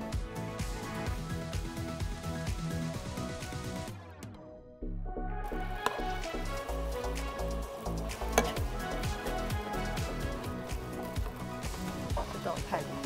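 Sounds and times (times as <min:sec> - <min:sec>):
background music with beat: 0:00.0 - 0:04.4, 0:05.1 - 0:13.0
utensil clinking on pan: 0:08.3 - 0:08.7.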